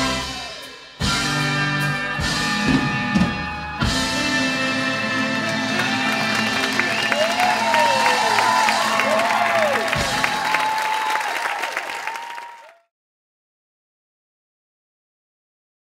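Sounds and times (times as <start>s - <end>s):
audience applauding and cheering: 0.0s - 12.9s
whoops: 5.7s - 12.9s.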